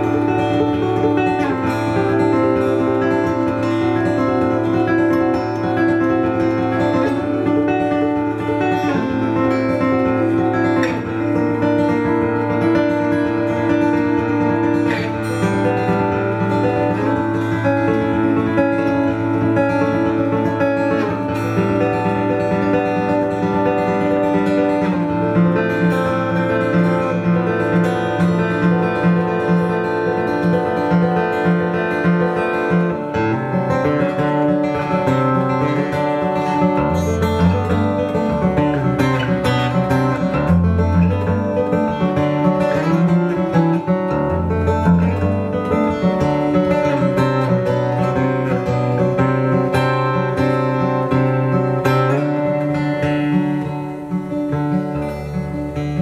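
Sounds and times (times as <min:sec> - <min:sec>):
acoustic guitar ringing notes: 0:00.0 - 0:56.0.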